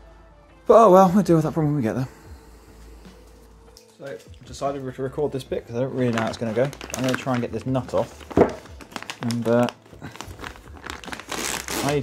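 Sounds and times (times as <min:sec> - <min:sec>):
plastic sleeve crinkling: 0:03.8 - 0:12.0.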